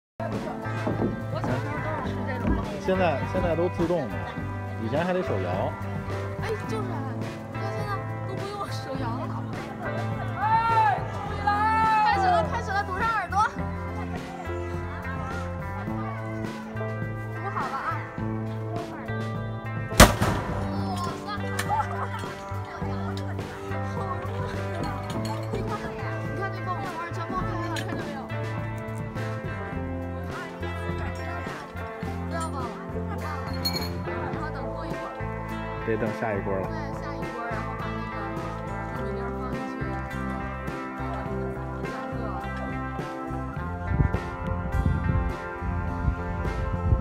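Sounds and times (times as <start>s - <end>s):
background music: 0.2s - 47.0s
popcorn machine bang: 20.0s - 20.7s.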